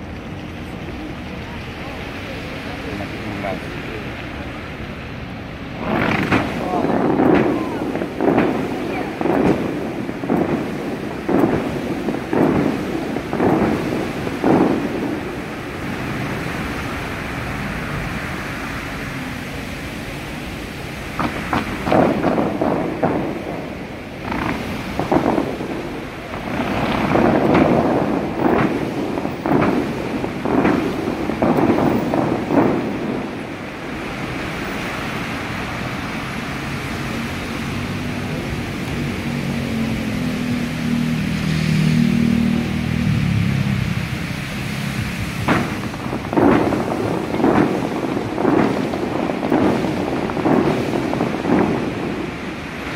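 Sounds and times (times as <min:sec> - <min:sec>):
fountain water jets rushing: 0:00.0 - 0:52.9.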